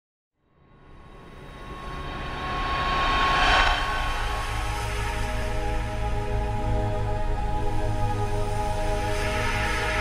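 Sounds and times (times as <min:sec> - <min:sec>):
whoosh with steady tone: 0:00.7 - 0:10.0.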